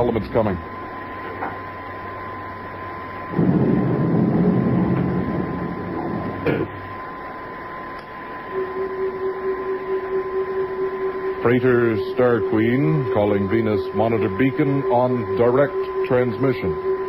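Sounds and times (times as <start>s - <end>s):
high electronic hum: 0.0s - 17.0s
mechanical whirring: 3.0s - 17.0s
low steady tone: 8.2s - 17.0s.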